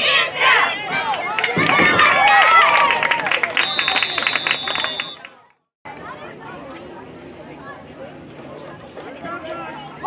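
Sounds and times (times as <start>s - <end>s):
indistinct crowd chatter: 3.8s - 10.0s.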